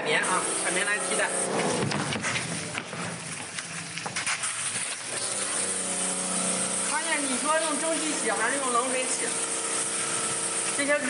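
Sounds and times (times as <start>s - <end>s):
machine hum: 0.0s - 11.0s
water spraying hiss: 0.0s - 11.0s.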